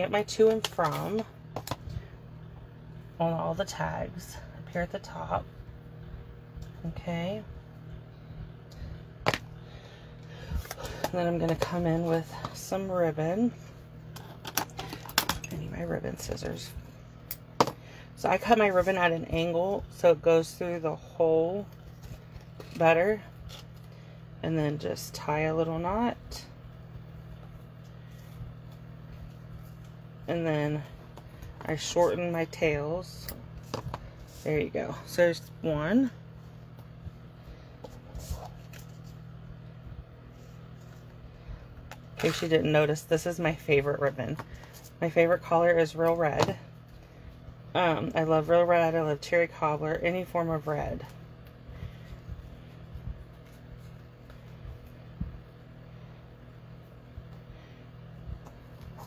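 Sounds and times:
low room hum: 0.0 - 59.0.

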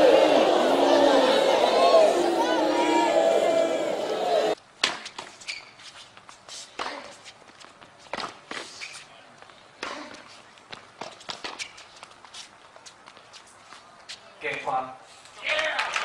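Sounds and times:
sneakers squeaking on court: 5.3 - 9.1.

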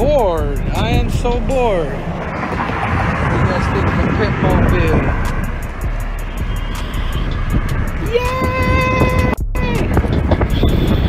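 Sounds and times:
rumbling road noise: 0.0 - 11.0
wind on microphone: 0.0 - 11.0
rider vocal sounds: 7.9 - 10.3.

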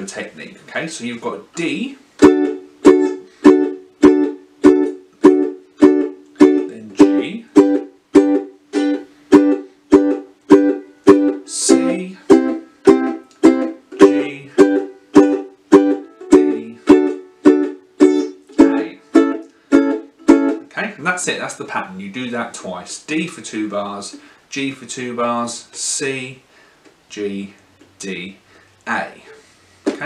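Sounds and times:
ukulele staccato strumming: 1.6 - 20.7.

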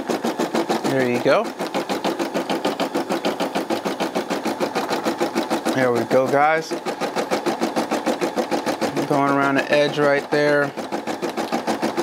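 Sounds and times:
embroidery machine stitching: 0.0 - 12.0.

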